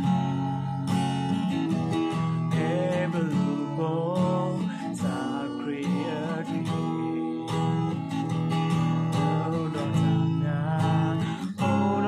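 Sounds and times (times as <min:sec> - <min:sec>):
acoustic guitar strumming: 0:00.0 - 0:12.0
person singing: 0:01.9 - 0:12.0.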